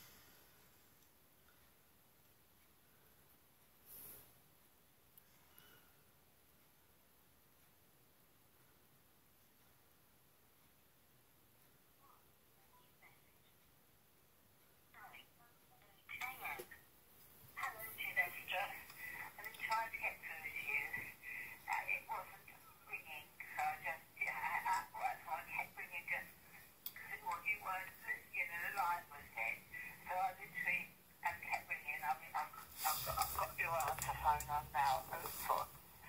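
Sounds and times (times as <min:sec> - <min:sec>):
woman's voice through phone speaker: 0:14.9 - 0:16.8, 0:17.5 - 0:36.0.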